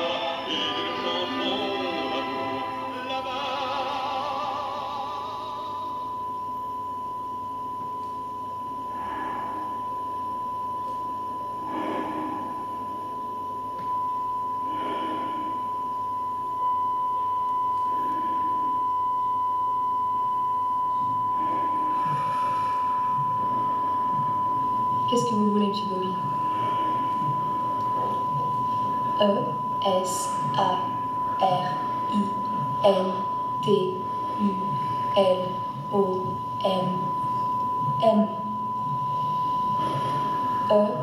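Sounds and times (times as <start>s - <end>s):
high-pitched electronic tone: 0.0s - 6.8s.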